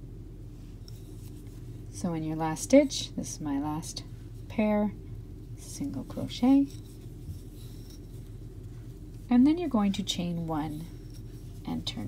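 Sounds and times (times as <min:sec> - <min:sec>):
low hum: 0:00.0 - 0:12.0
yarn rustling through stitches: 0:00.5 - 0:12.0.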